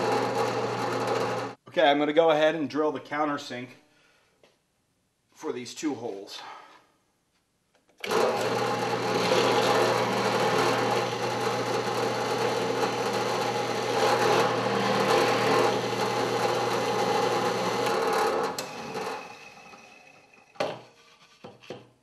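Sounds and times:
drill press cutting into plywood: 0.0 - 1.6, 8.0 - 20.7.

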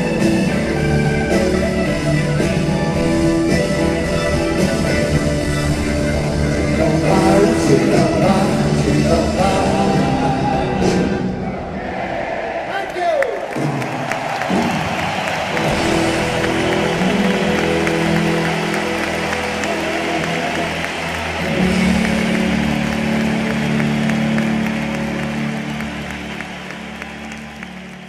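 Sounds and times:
rock band sustained chords: 0.0 - 11.6, 15.5 - 28.0
audience applauding and cheering: 0.0 - 28.0.

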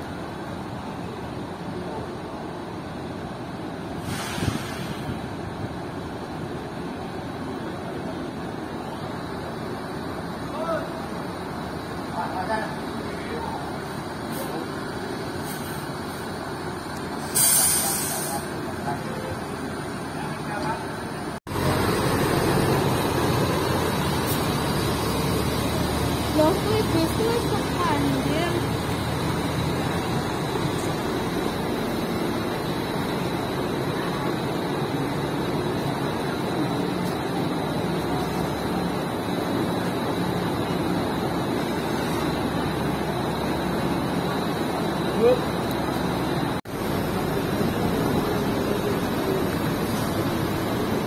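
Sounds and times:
bus engine rumbling pulling away: 0.0 - 51.0
diesel bus engines running: 0.0 - 51.0
air brakes hissing: 3.9 - 5.3, 15.3 - 16.4, 17.1 - 18.6
people's voices: 6.4 - 51.0.

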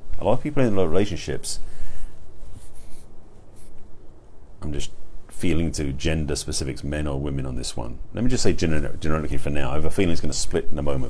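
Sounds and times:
soft rustling: 0.0 - 5.2.

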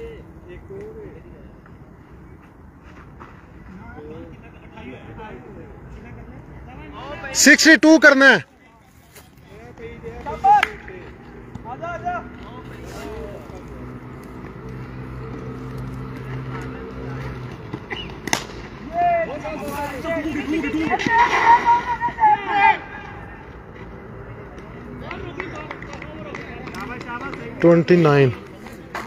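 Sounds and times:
players calling out: 6.6 - 8.5, 16.1 - 28.9
bat hitting ball: 17.9 - 18.7
excited shouts: 20.8 - 23.3.

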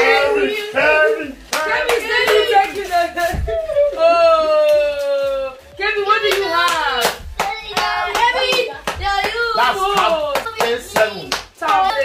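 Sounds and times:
excited voices: 0.0 - 12.0.

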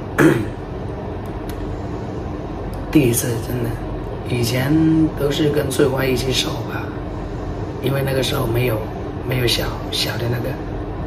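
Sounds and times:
air conditioner hum and hiss: 0.0 - 11.0.

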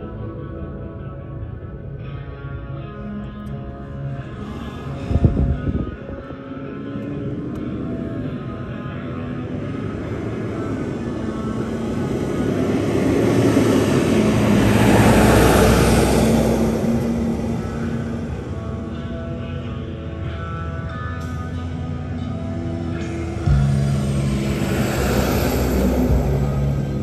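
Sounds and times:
aircraft passing overhead: 4.2 - 27.0.

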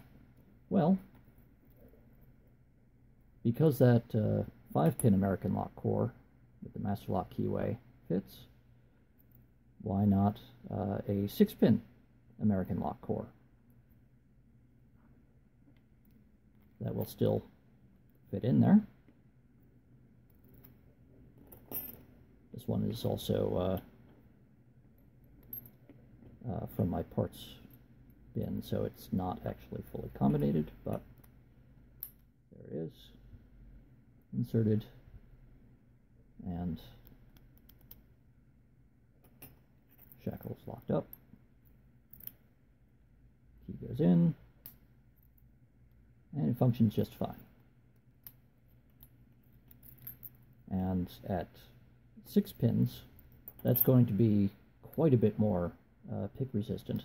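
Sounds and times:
metallic clink: 21.4 - 22.1, 39.2 - 41.3, 48.2 - 50.5.

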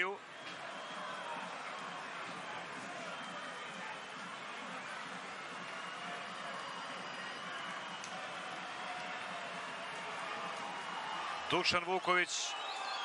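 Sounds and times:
stadium crowd noise: 0.0 - 13.0.

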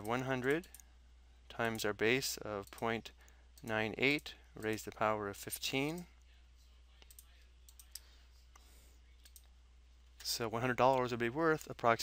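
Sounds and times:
faint low hum: 0.0 - 12.0
computer mouse clicks: 7.0 - 9.5.

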